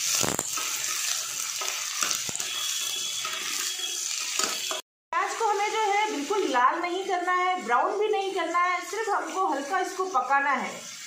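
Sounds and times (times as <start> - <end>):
onions sizzling in hot oil: 0.0 - 11.0.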